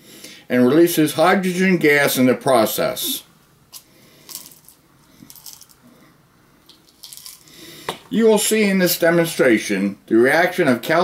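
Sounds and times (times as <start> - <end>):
metal pieces rattling in plastic bottle: 4.3 - 5.8, 6.8 - 7.5.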